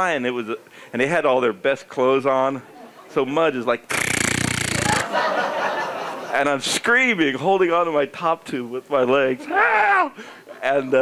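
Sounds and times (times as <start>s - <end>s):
man blowing buzzing raspberry: 3.9s - 5.1s.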